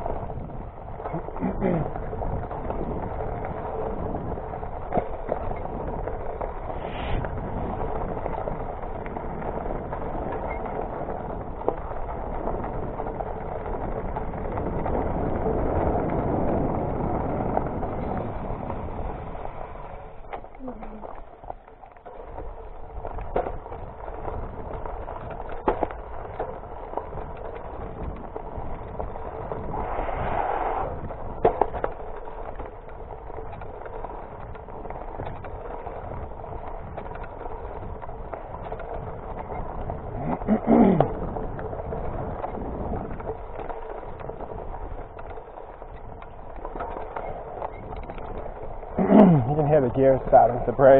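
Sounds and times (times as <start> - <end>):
bike rattling and knocking: 0.0 - 29.8, 30.8 - 50.9
bike tyre and wind noise: 0.0 - 50.9.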